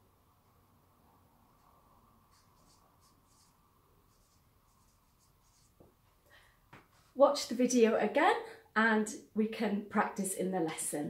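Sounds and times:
marker pen strokes on paper: 1.6 - 6.2, 6.8 - 7.2.

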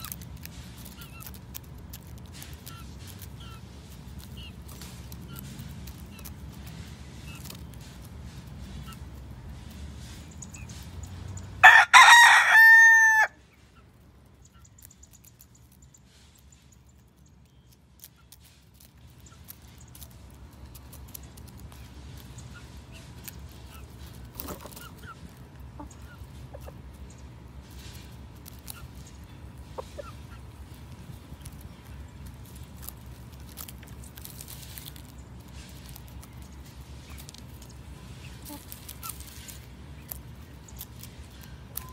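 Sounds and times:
rooster crowing: 11.6 - 13.4
beaks ticking on stones: 14.3 - 23.6
chickens clucking softly: 20.6 - 33.0, 34.8 - 41.9.

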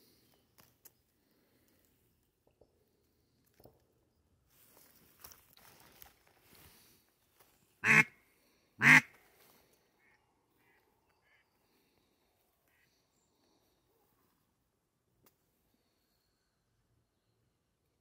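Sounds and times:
duck quacking: 7.8 - 8.2, 8.8 - 9.2.

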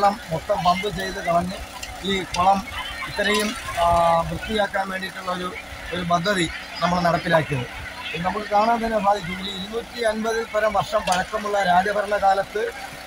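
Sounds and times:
petrol water pumps running: 0.0 - 13.0.

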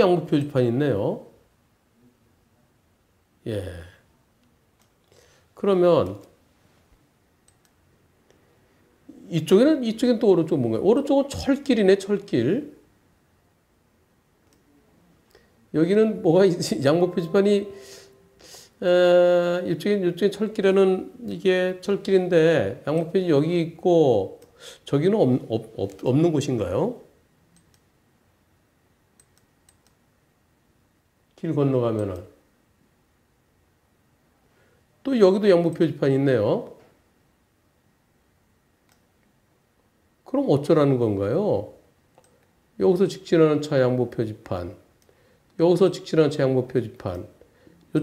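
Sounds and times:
person speaking: 0.0 - 1.4, 3.4 - 4.1, 5.6 - 6.4, 9.0 - 12.9, 14.6 - 27.2, 31.4 - 32.4, 45.6 - 48.0.

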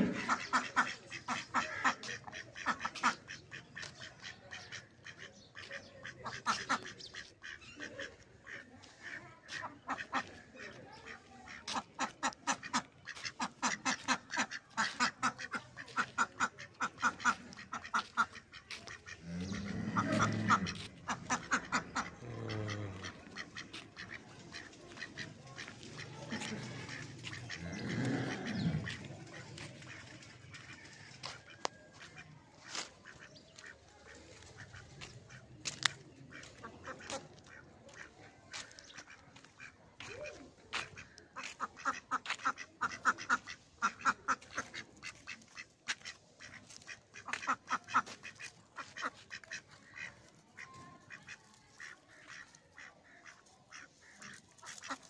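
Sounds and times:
ducks quacking: 0.0 - 55.0.

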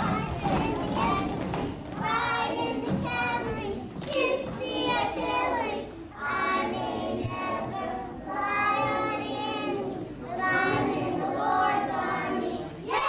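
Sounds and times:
children singing together: 0.0 - 13.0.

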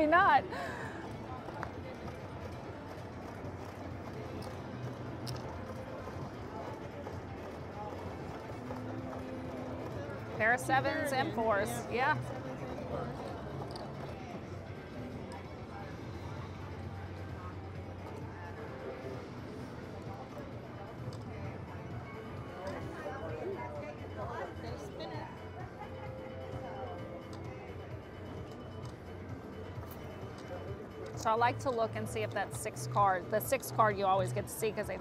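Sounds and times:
background music: 0.0 - 35.0
murmur of distant voices: 0.0 - 35.0.

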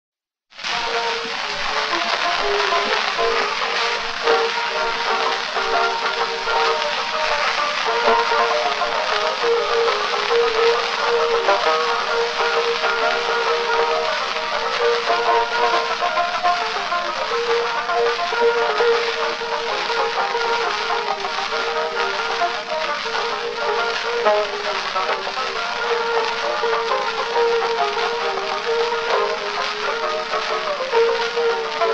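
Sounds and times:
phonograph march recording: 0.5 - 31.9
surface hiss: 0.6 - 31.9.

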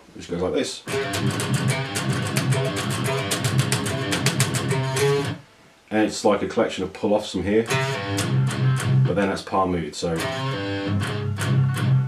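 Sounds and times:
distorted electric guitar riff: 0.9 - 5.4, 7.6 - 9.4, 10.1 - 12.0.

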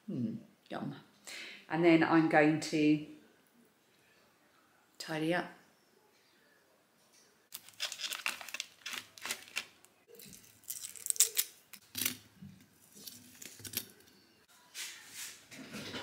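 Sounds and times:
foil wrapper crinkling: 7.5 - 12.2, 12.8 - 14.1.

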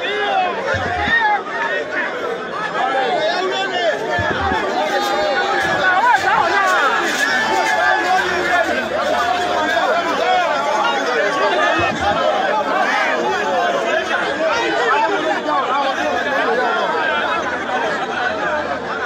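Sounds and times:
crowd babble: 0.0 - 19.0.

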